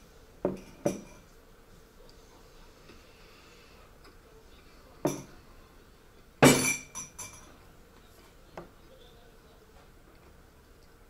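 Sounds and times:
wine glass clinking: 6.4s - 7.5s.

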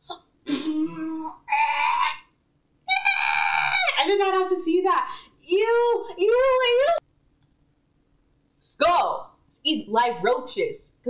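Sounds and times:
woman squealing: 0.7s - 2.2s, 2.9s - 4.1s.

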